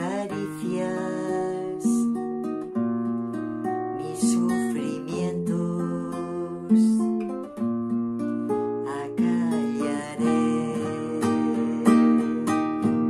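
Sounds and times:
classical guitar chords: 0.0s - 13.0s.

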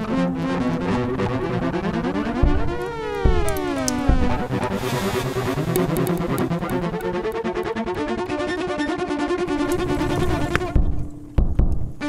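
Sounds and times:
bowed electric cello: 0.0s - 11.2s
fast ticking pulse: 0.9s - 7.7s
deep low thuds: 2.4s - 4.8s, 9.6s - 12.0s.

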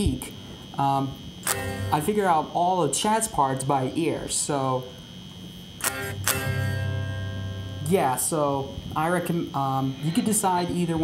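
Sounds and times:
electric guitar chords ringing: 1.1s - 2.6s, 5.7s - 11.0s.

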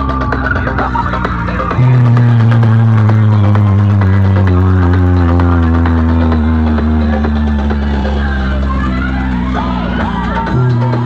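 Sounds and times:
deep sustained bass drone: 0.0s - 11.0s
loud electronic music: 0.0s - 11.0s.

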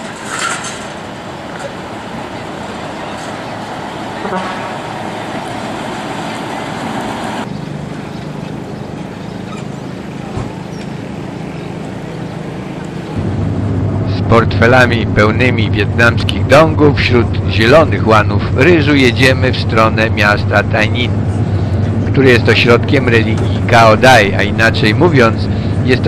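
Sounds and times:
low engine drone: 0.0s - 26.0s
steady traffic noise: 0.0s - 26.0s.

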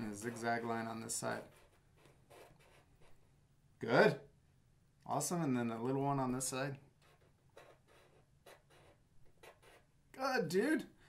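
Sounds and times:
marker scratching on paper: 0.0s - 3.2s, 7.0s - 10.0s.

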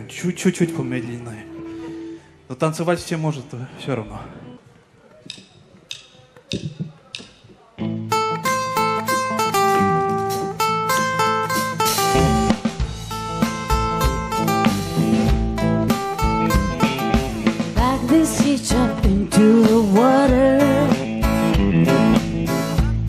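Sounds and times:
drumstick clicks: 5.2s - 7.6s
bass guitar: 7.8s - 23.0s
electric guitar melody: 7.8s - 23.0s
strummed acoustic guitar: 8.1s - 23.0s
drum kit: 8.5s - 23.0s.

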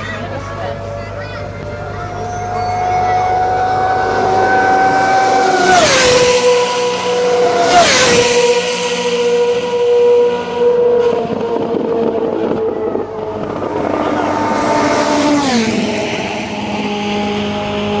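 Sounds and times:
race car engines passing: 0.0s - 18.0s.

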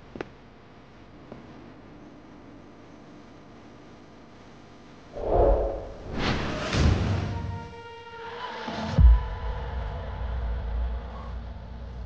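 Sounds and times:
low rumbling drone: 5.2s - 6.6s.

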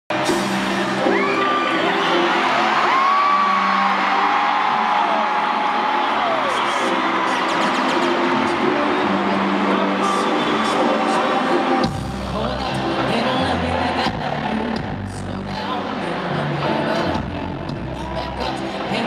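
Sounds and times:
live pop music over loudspeakers: 0.1s - 19.0s
fans whooping and screaming: 0.2s - 11.9s.

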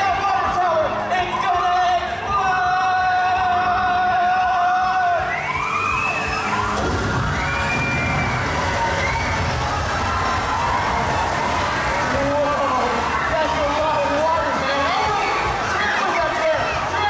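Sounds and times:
show music: 0.0s - 17.0s
crowd cheering and whooping: 4.2s - 17.0s
water pouring and splashing: 5.8s - 17.0s.

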